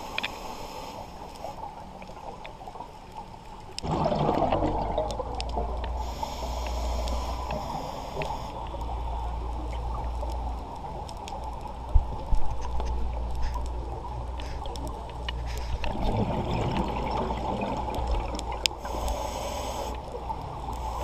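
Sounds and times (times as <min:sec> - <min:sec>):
high hiss: 0:00.0 - 0:01.3, 0:06.0 - 0:09.0, 0:18.8 - 0:20.0
underwater exhale bubbles gurgling: 0:03.7 - 0:10.5, 0:13.9 - 0:21.0.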